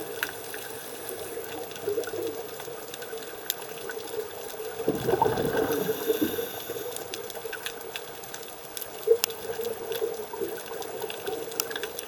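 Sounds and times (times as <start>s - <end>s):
sharp underwater clicks and crackles: 0.0s - 12.0s
underwater low hum and hiss: 0.0s - 12.0s
diver's bubbles gurgling: 1.6s - 7.6s.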